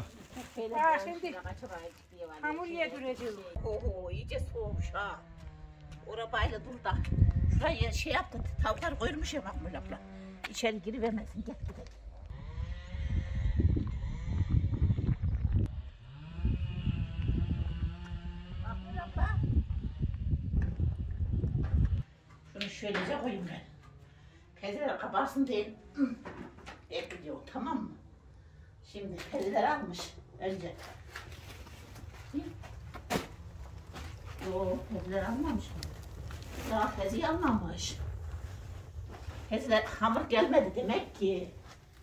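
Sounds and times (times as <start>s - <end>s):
microphone handling rumble: 12.5s - 22.0s
footsteps: 29.1s - 42.0s
low steady rumble: 31.5s - 42.0s.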